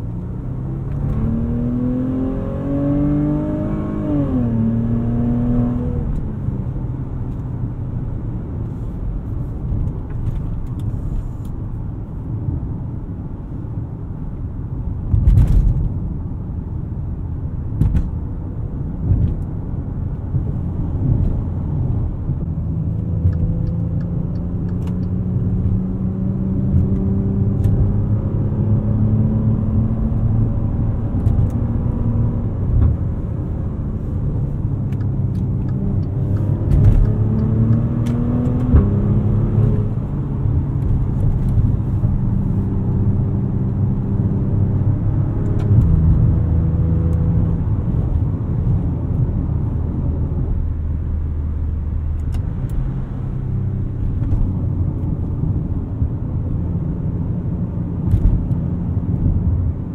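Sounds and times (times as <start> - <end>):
car engine droning: 0.0 - 59.9
road and tyre noise: 0.0 - 59.9.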